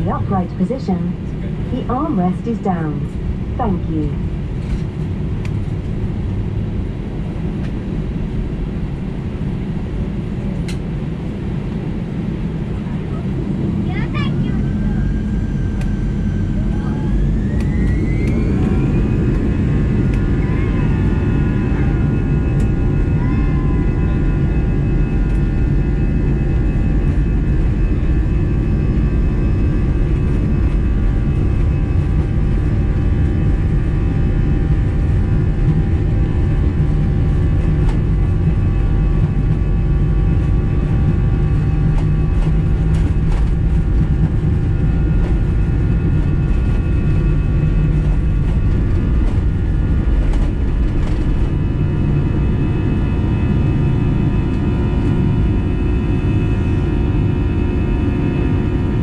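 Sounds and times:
jet engines spooling up: 0.0s - 7.0s, 10.4s - 59.0s.

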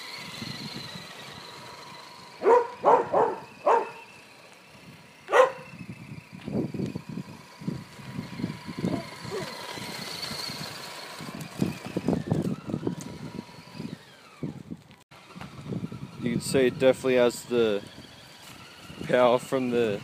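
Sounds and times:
electric motor whine: 0.0s - 20.0s
dog barking: 2.4s - 4.0s, 5.3s - 5.7s.

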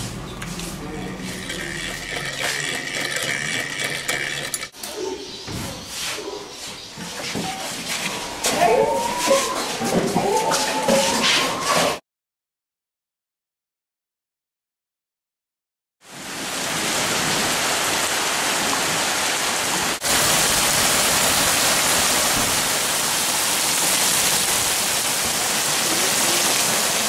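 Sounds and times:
indistinct voices: 0.8s - 5.7s, 8.4s - 11.6s.

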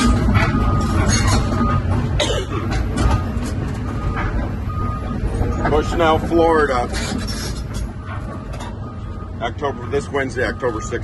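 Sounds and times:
excavator diesel engine rumble: 0.0s - 11.0s.

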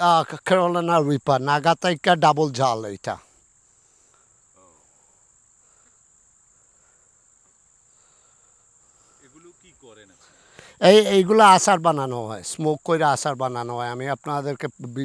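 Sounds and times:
man speaking: 0.0s - 3.3s, 9.2s - 15.0s
insects singing: 0.0s - 15.0s.

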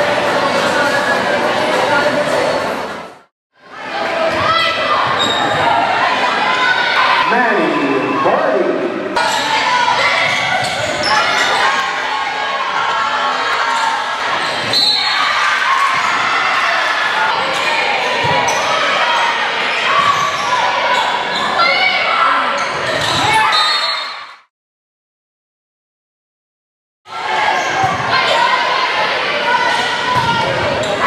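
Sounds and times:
people shouting and cheering: 3.6s - 24.4s, 27.1s - 31.0s.

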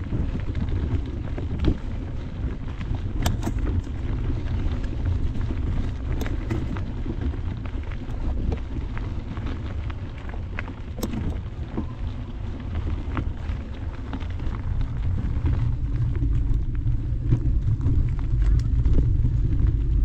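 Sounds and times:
bike clicks and rattles: 0.0s - 20.0s
tyres rolling over dirt: 0.0s - 20.0s
wind rumble on microphone: 0.0s - 20.0s.

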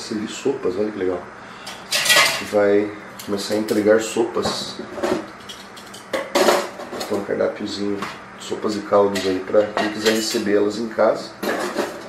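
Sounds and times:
dishes and utensils clattering: 1.7s - 2.6s, 3.5s - 7.2s, 9.1s - 10.5s, 11.4s - 12.0s.

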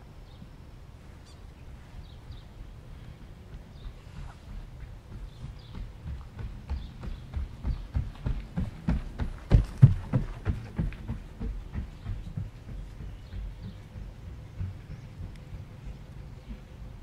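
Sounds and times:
birds calling: 0.2s - 17.0s
low rumble: 1.8s - 17.0s
rhythmic thumps: 3.2s - 17.0s.

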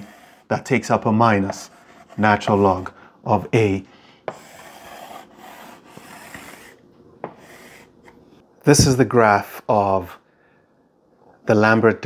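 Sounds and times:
chalk scratching on blackboard: 0.0s - 0.6s, 1.2s - 2.9s, 4.3s - 8.2s.

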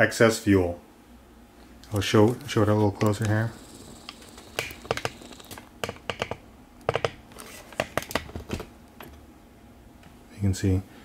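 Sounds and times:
handling clicks and taps: 1.8s - 9.2s.

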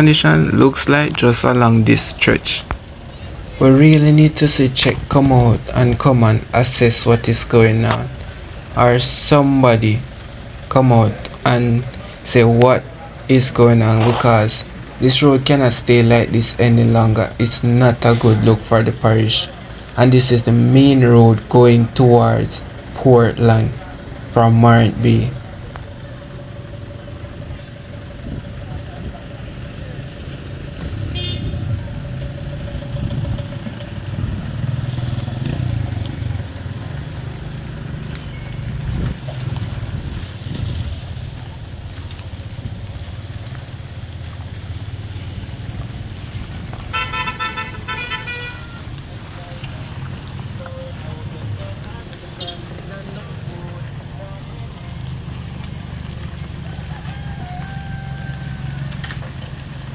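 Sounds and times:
car engines rumbling: 0.0s - 59.9s
car horn: 31.0s - 31.9s, 46.8s - 49.6s, 50.6s - 53.0s.

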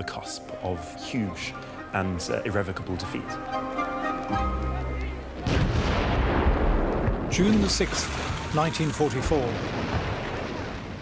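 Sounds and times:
artillery fire: 5.4s - 7.7s.

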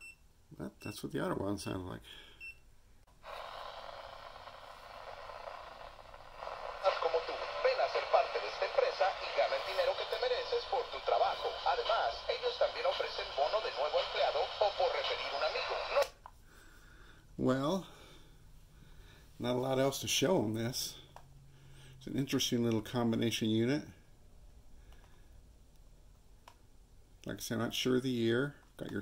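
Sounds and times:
radio static hiss: 3.2s - 16.2s
tinny radio voice broadcast: 6.6s - 16.2s.

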